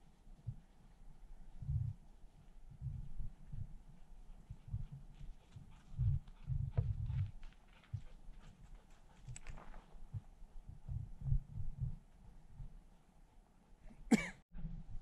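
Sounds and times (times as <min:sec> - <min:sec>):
low rumbling thumps on microphone: 0:01.6 - 0:02.0, 0:02.7 - 0:03.8, 0:04.5 - 0:08.1, 0:10.0 - 0:12.7
faint clicks: 0:09.2 - 0:10.0.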